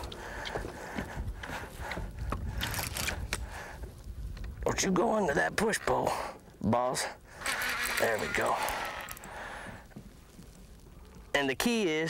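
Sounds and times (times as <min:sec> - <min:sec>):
wind rumbling on microphone: 0:00.0 - 0:06.6.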